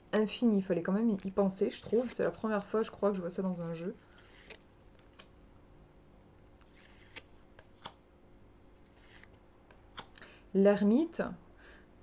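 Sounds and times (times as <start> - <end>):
cards clicking against cards: 4.1 - 5.4, 6.6 - 8.0, 8.8 - 10.3.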